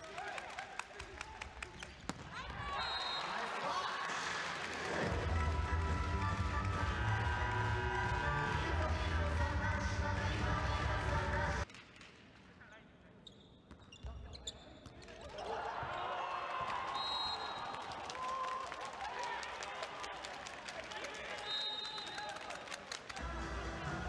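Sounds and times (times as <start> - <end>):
crowd clapping: 0.0 - 11.7, 16.4 - 23.3
shoe squeaks: 13.2 - 15.1.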